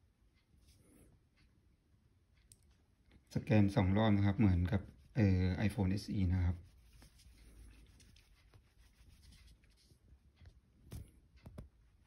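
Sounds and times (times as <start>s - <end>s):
soft rubbing: 3.4s - 11.7s.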